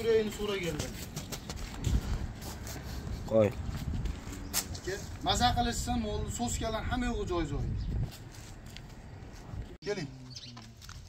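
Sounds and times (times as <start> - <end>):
wind rumbling on microphone: 1.4 - 9.8.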